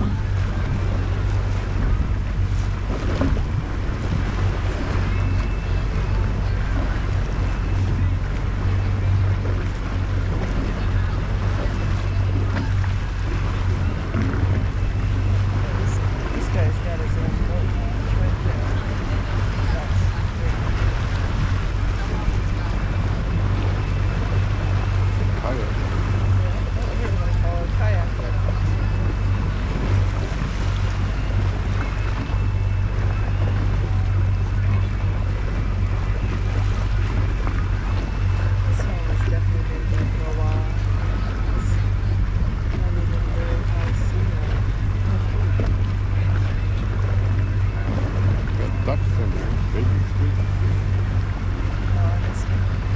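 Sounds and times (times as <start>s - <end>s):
boat motor humming: 0.0s - 52.9s
water washing along hull: 0.0s - 52.9s
wind buffeting microphone: 0.0s - 52.9s.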